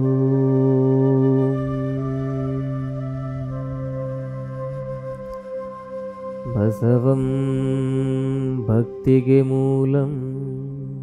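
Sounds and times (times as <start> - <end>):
soft devotional music with drone: 0.0 - 11.0.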